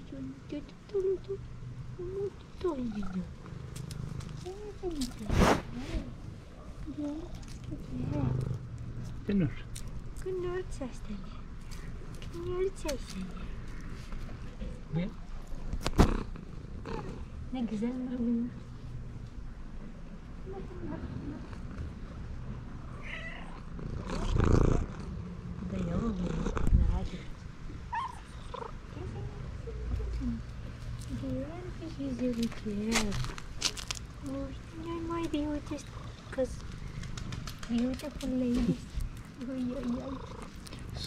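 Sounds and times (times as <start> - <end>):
cat purring: 0.0 - 6.2, 6.8 - 18.6, 23.5 - 27.3, 34.2 - 41.0
cat meowing: 23.0 - 23.7.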